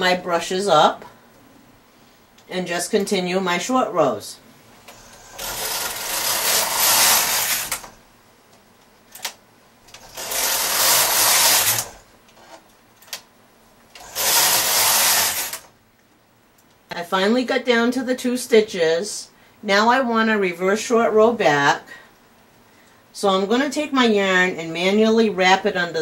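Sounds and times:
knitting machine carriage sliding: 4.9 - 8.0, 9.9 - 12.6, 14.0 - 15.7.

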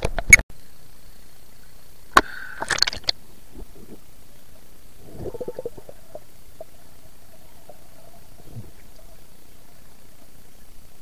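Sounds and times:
underwater gurgling: 2.3 - 11.0
bubbling pulses: 5.0 - 10.1.

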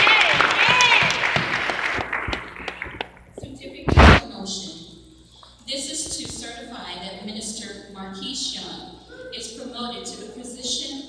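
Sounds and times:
audience applause: 0.0 - 3.1
loud thump: 3.9 - 4.2.

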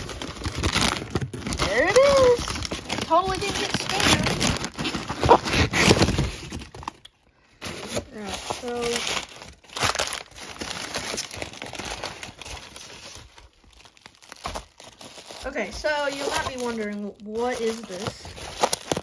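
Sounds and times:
packing paper rustling and crinkling: 0.0 - 19.0.

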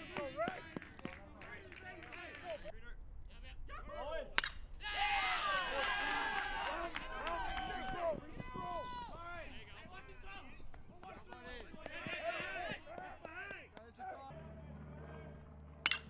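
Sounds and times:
bat cracking ball: 4.4 - 4.6, 15.4 - 16.0
crowd shouting and cheering: 4.8 - 16.0.

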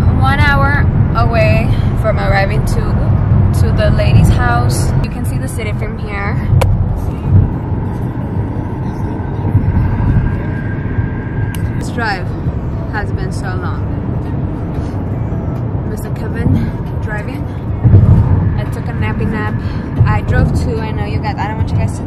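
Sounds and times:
car cabin road and engine noise: 0.0 - 22.0.

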